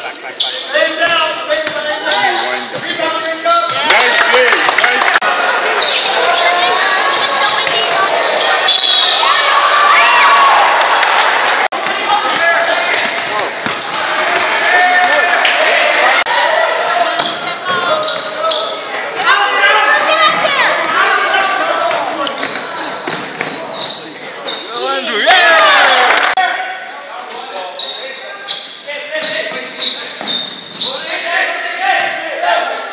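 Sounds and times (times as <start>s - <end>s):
voices calling out in a hall: 0.0s - 32.9s.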